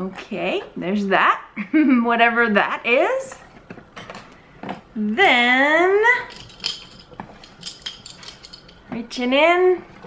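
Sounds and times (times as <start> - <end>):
small metal objects clinking on glass: 6.3 - 8.8.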